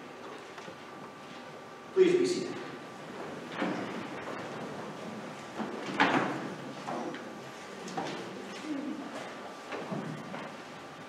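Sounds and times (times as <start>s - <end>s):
people shuffling: 0.0s - 11.0s.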